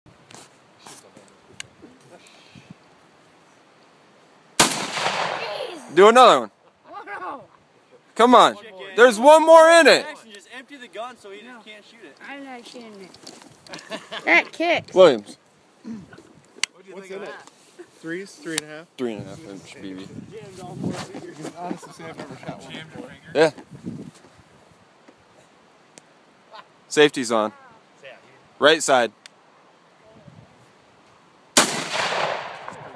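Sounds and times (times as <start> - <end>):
shotgun shot with echo: 4.6 - 5.5, 31.6 - 32.9.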